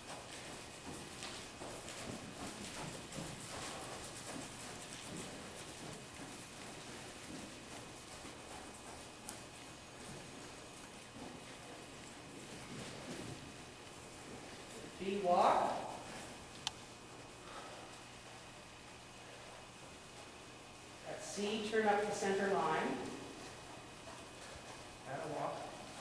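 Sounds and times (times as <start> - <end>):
horse hooves trotting on dirt: 0.0 - 26.0.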